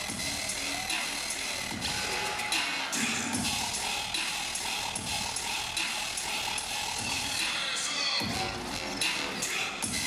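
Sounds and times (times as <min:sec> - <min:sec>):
loud dubstep over sound system: 0:00.0 - 0:10.0.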